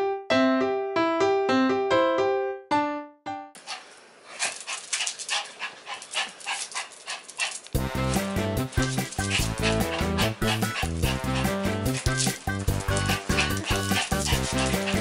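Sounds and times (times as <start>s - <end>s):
dog moving on wooden floor: 3.6s - 15.0s.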